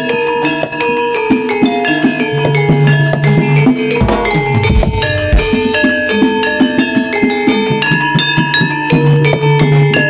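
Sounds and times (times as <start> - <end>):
gamelan metal keys and gongs: 0.0 - 10.0
drum strokes: 2.2 - 7.1.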